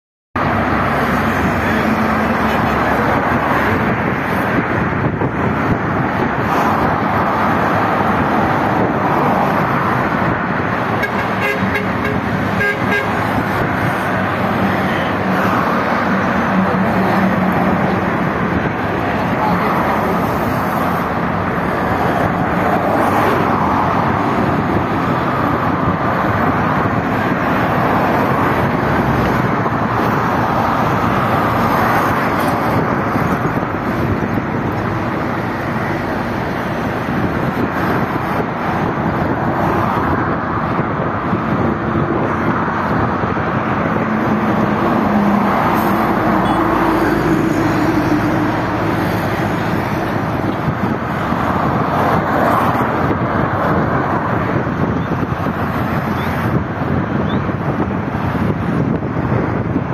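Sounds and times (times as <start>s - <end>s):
dense road traffic: 0.3s - 59.9s
car horn toot: 11.0s - 13.3s.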